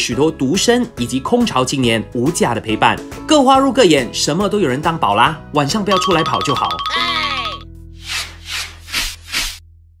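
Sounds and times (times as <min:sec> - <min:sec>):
whooshing swish effects: 0:08.0 - 0:09.6.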